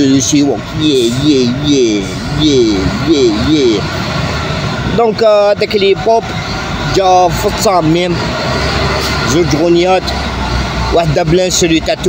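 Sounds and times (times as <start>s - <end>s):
man speaking: 0.0s - 4.0s, 4.8s - 6.3s, 6.9s - 8.2s, 9.3s - 10.2s, 10.9s - 12.0s.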